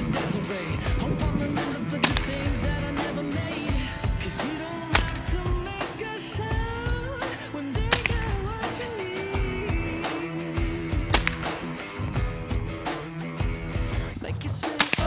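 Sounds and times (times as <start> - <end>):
rifle shots: 0.0 - 5.9, 7.8 - 9.0, 10.1 - 11.9, 14.8 - 15.0
pop song with singing: 0.0 - 15.0.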